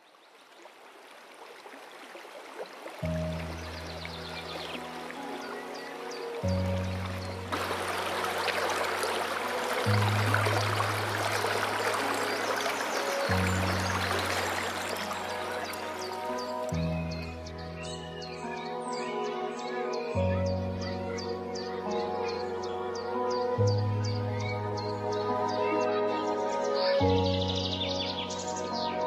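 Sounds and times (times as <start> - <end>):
river water flowing: 0.0 - 29.0.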